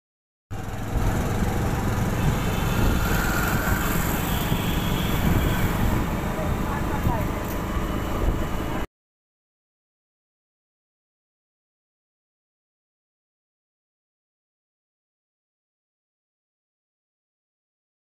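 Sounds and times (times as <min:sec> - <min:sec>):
street traffic: 0:00.5 - 0:08.9
wind rumble on microphone: 0:00.9 - 0:08.8.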